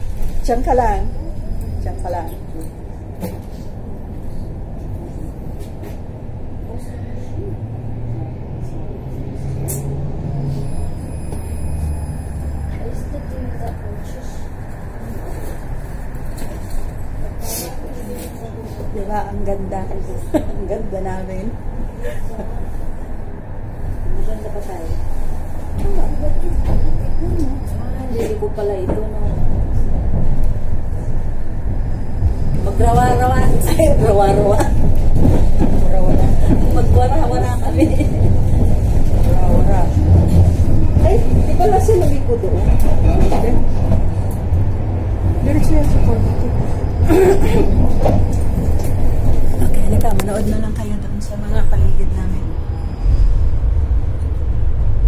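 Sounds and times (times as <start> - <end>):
tram cabin rumble: 0.0 - 55.0
low hum: 51.1 - 55.0.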